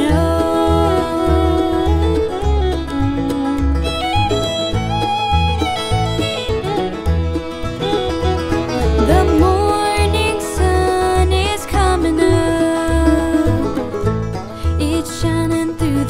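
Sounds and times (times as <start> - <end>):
steady pulsing bass: 0.0 - 16.0
string band playing: 0.0 - 16.0.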